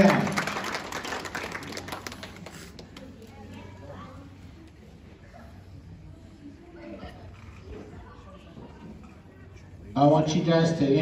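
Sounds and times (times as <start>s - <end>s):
audience clapping: 0.0s - 3.1s.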